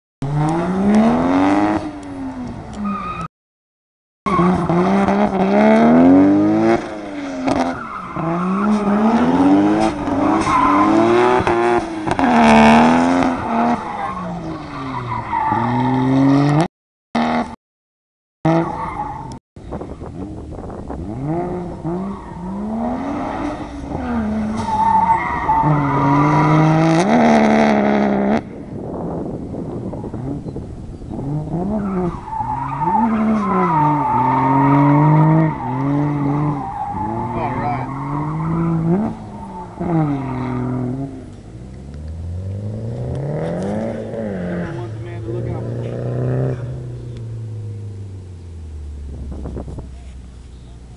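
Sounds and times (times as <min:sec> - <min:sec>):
car engine revving: 0:00.2 - 0:03.2, 0:04.3 - 0:17.6, 0:20.0 - 0:50.9
tyres squealing and skidding: 0:02.7 - 0:03.3, 0:06.9 - 0:16.6, 0:18.5 - 0:19.4, 0:21.7 - 0:27.1, 0:31.6 - 0:41.3.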